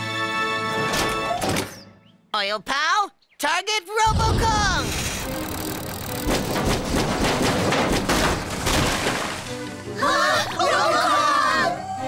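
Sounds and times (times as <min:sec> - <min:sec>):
cartoon background music: 0:04.1 - 0:12.0.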